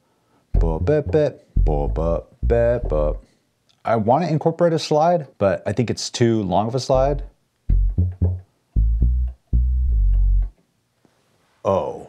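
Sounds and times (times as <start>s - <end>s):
deep bass notes: 0.6s - 3.3s, 6.9s - 10.5s.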